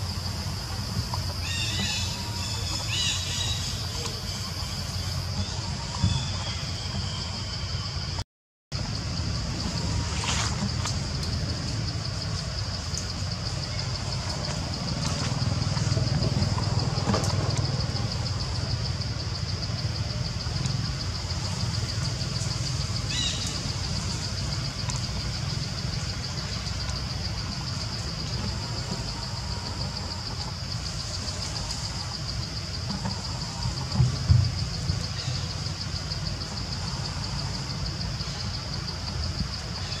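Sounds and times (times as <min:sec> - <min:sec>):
cicadas droning: 0:00.0 - 0:40.0.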